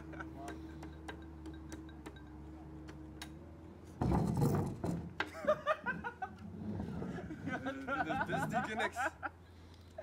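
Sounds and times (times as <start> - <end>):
young men laughing and exclaiming: 0.0 - 0.6, 7.1 - 9.4.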